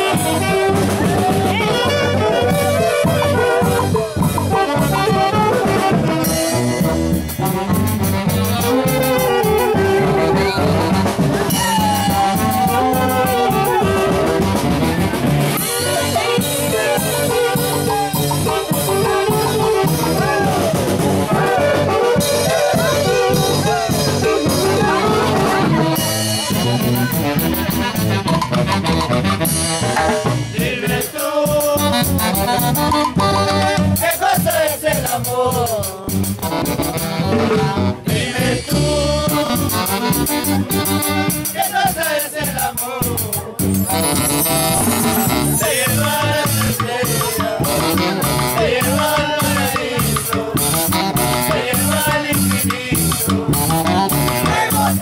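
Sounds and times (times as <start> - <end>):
saxophones playing dance tune: 0.0 - 30.3, 31.3 - 35.4, 36.1 - 55.0
drum kit beat: 0.0 - 55.0.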